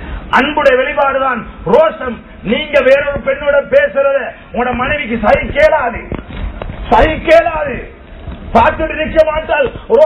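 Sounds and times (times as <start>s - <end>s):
man speaking: 0.3s - 6.2s, 6.9s - 10.0s.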